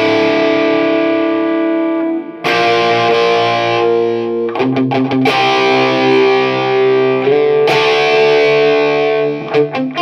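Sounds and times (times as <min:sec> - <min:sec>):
overdriven electric guitar chord: 0:00.0 - 0:10.0.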